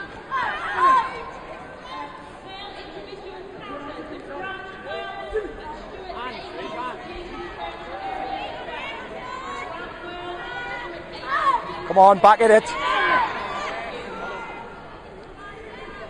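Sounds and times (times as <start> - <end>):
chatter of many voices: 0.0 - 16.0.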